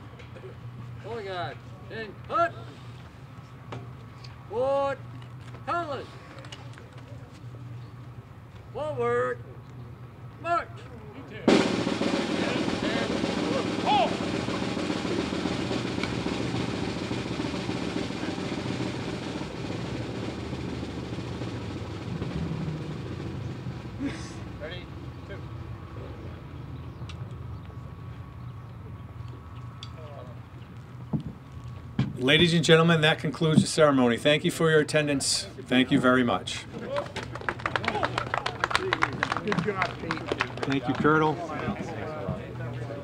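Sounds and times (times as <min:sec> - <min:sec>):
snare drum roll: 0:11.5 - 0:24.1.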